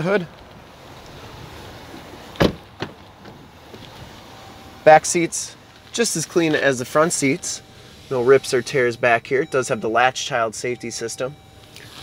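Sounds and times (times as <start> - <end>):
car door thud: 2.4 - 3.4.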